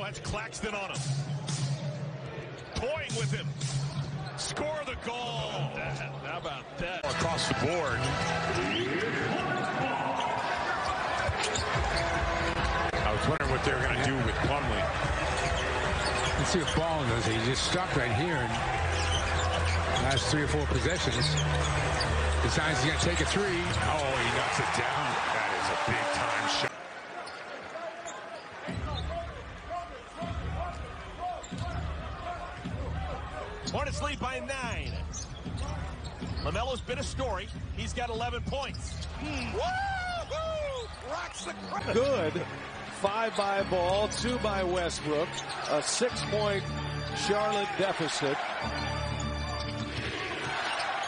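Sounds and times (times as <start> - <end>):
arena crowd noise: 0.0 - 51.0.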